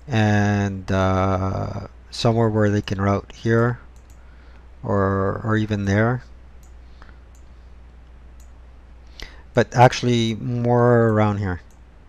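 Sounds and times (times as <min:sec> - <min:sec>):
low steady hum: 0:00.0 - 0:12.0
computer mouse clicking: 0:03.9 - 0:04.2, 0:06.6 - 0:08.6, 0:11.0 - 0:11.9.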